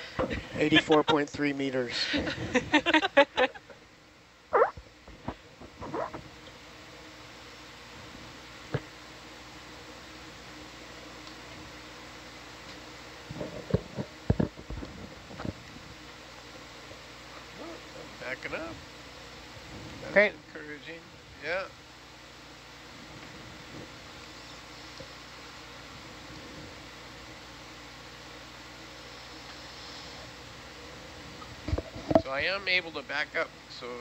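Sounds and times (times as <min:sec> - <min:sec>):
equipment and fans humming: 0:00.0 - 0:34.0
person laughing: 0:00.2 - 0:01.3, 0:02.0 - 0:03.7.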